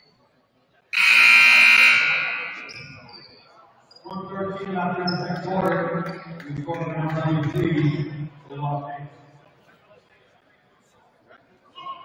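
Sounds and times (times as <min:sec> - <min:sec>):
scoreboard buzzer blast: 0:01.0 - 0:03.0.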